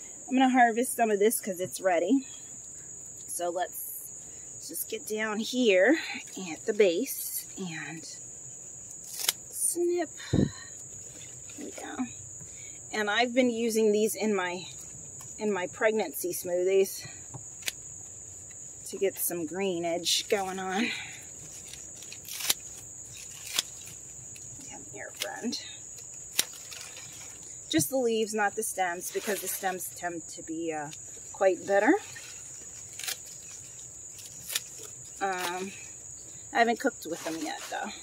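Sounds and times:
crickets chirring: 0:00.0 - 0:38.0
scissors snipping a stalk: 0:09.1 - 0:09.4, 0:21.7 - 0:22.6, 0:23.2 - 0:24.0, 0:25.1 - 0:27.0, 0:32.9 - 0:33.3, 0:34.2 - 0:35.7.

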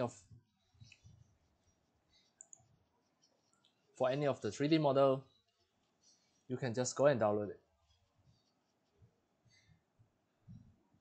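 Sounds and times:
computer mouse clicks: 0:02.2 - 0:03.8.

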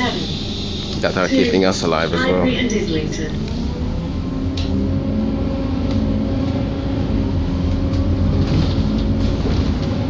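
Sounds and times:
bus engine and road drone: 0:00.0 - 0:10.0.

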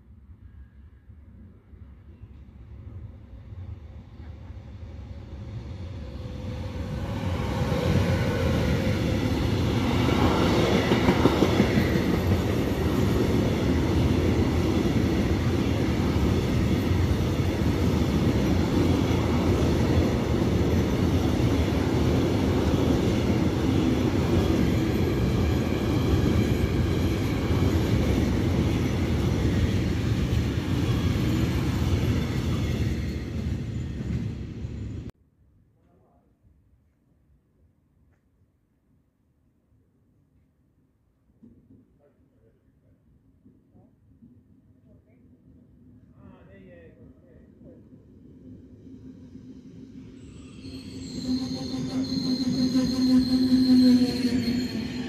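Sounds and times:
freight train passing: 0:00.0 - 0:35.1, 0:45.8 - 0:55.0
train wheel clatter: 0:09.8 - 0:14.7.

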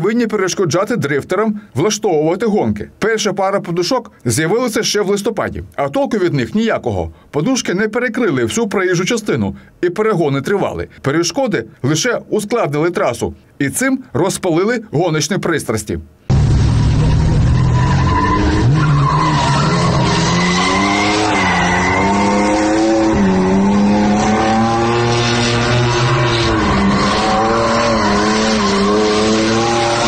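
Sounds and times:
car engines revving: 0:16.3 - 0:30.0
tyres squealing on asphalt: 0:16.6 - 0:30.0.

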